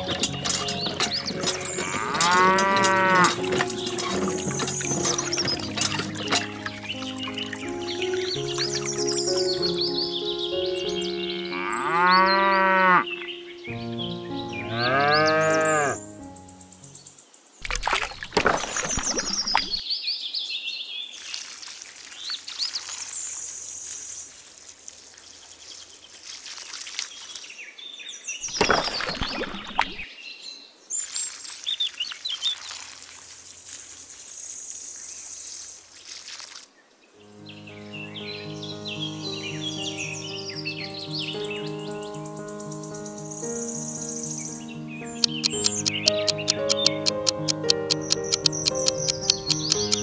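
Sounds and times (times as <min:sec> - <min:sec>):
water trickling from watering can: 0:00.0 - 0:09.6, 0:17.6 - 0:19.8, 0:21.2 - 0:27.5, 0:31.0 - 0:36.7
birds chirping: 0:00.0 - 0:19.9, 0:37.2 - 0:50.0
music with steady beat: 0:45.2 - 0:50.0.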